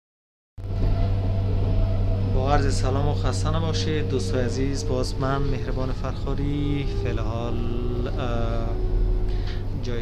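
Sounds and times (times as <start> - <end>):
train carriage rumble: 0.6 - 10.0.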